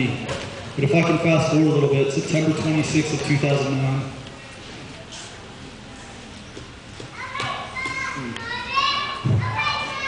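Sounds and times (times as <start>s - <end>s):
young child talking: 7.1s - 10.0s.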